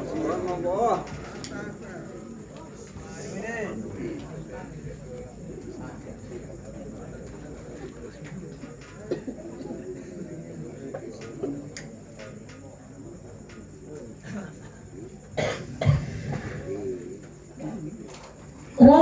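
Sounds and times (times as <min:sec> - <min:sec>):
faint murmur of voices: 0:00.0 - 0:19.0
person coughing into microphone: 0:09.1 - 0:09.5, 0:15.4 - 0:16.7.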